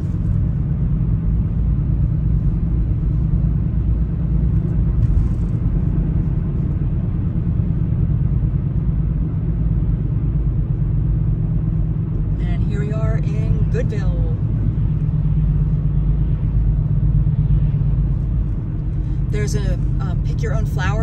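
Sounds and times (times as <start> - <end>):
car engine and tyre noise: 0.0 - 21.0.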